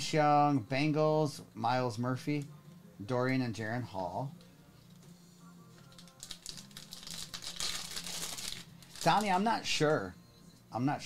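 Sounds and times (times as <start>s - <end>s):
plastic wrapper crinkling and tearing: 5.8s - 9.6s.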